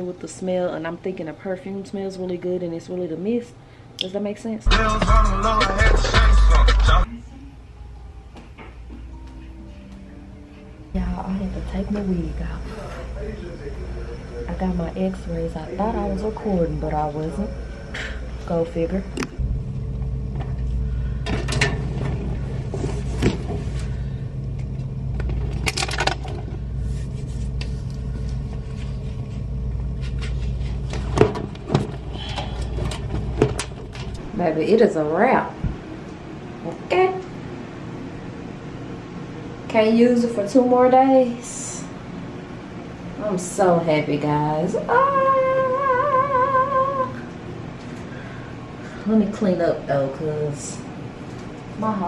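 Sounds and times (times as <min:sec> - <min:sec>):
low mechanical hum: 0:00.0 - 0:52.0
woman singing high note: 0:44.8 - 0:47.3.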